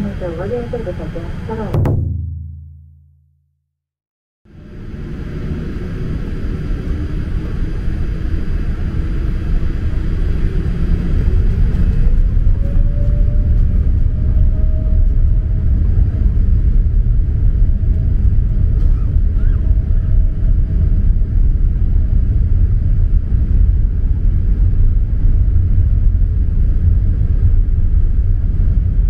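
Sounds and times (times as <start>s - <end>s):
jet engine rumble in cabin: 0.0s - 1.9s, 4.5s - 29.0s
jet engine whine rising: 4.5s - 25.6s.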